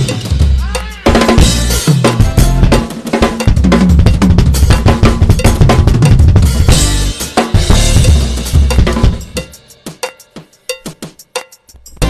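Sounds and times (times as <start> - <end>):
drum kit played fast: 0.0 - 12.0.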